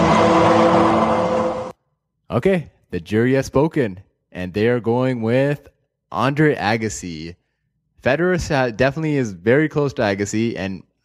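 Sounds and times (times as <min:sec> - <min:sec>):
dense noisy sound effect sting: 0:00.0 - 0:01.8.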